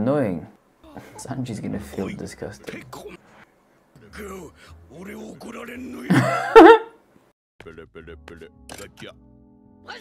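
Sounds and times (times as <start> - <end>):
man laughing loudly: 6.1 - 6.9.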